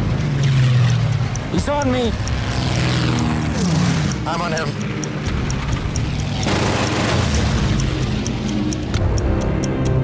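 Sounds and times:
clock-like ticking: 0:00.0 - 0:10.0.

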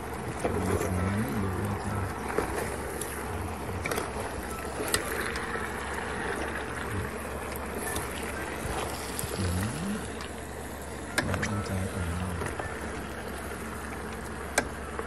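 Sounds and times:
noisy bed: 0:00.0 - 0:15.0
low voice singing: 0:09.2 - 0:10.2.

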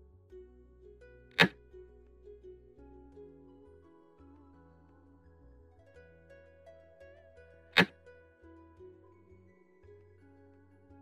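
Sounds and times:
soft plucked-string music: 0:00.0 - 0:11.0.

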